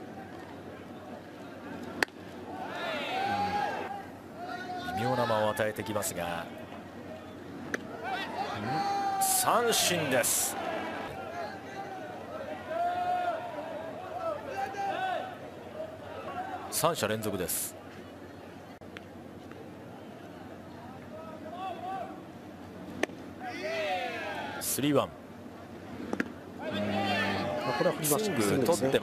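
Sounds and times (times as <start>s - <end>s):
stadium crowd: 0.0s - 22.7s, 23.3s - 29.0s
voices calling out: 1.6s - 16.9s, 26.6s - 29.0s.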